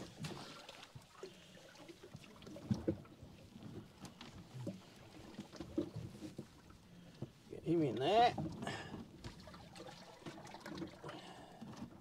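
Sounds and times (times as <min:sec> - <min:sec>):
water lapping against boat hull: 0:00.0 - 0:12.0.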